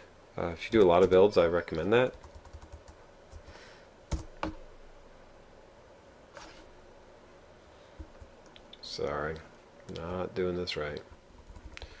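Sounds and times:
computer keyboard typing: 2.0s - 3.5s, 10.9s - 12.0s.

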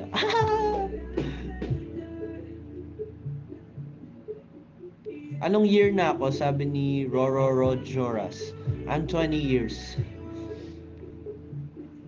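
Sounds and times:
background guitar music: 0.0s - 12.0s.

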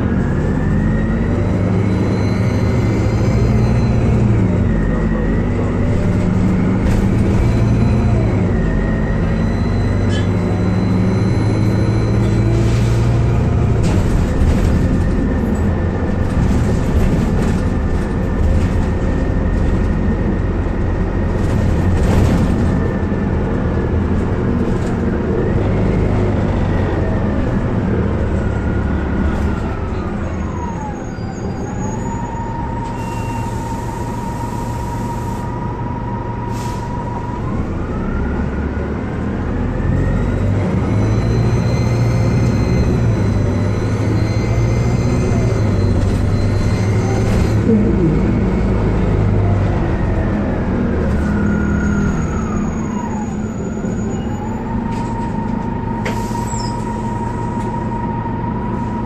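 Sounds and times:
bus engine low rumble: 0.0s - 59.0s
drivetrain whine: 39.9s - 56.1s.

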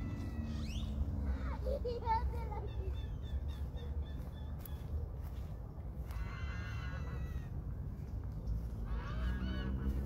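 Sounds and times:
steady low rumble: 0.0s - 10.0s
waterfowl calling: 6.0s - 7.7s, 8.5s - 10.0s.

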